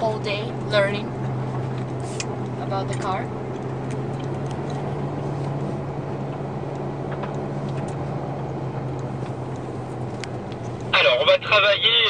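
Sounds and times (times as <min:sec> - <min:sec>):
car engine running steadily: 0:00.0 - 0:12.0
road noise: 0:00.0 - 0:12.0.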